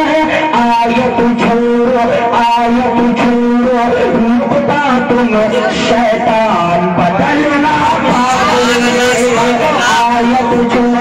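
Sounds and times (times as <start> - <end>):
man singing over loudspeakers: 0.0 - 11.0.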